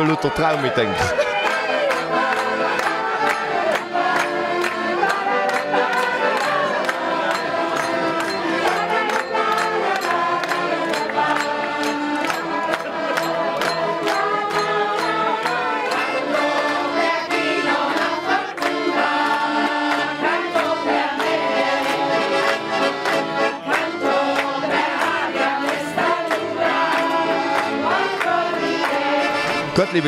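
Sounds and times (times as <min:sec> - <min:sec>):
accordions playing folk tune: 0:00.0 - 0:30.0
listeners clapping along: 0:00.0 - 0:30.0.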